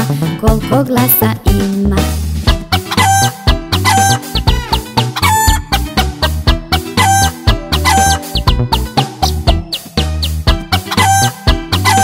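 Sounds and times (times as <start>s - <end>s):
upbeat children's song: 0.0s - 12.0s
chicken clucking: 2.9s - 9.9s, 10.7s - 12.0s.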